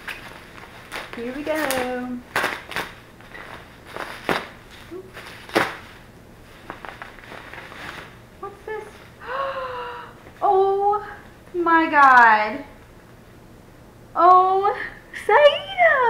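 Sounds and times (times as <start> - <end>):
bubble wrap rustling and crinkling: 0.0 - 9.2.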